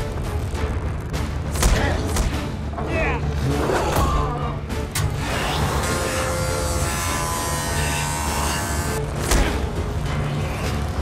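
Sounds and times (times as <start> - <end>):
tense droning background score: 0.0 - 11.0.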